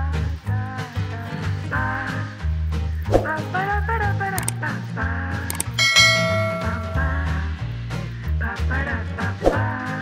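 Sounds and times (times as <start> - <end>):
background music: 0.0 - 10.0
bell chime ringing: 5.5 - 7.5.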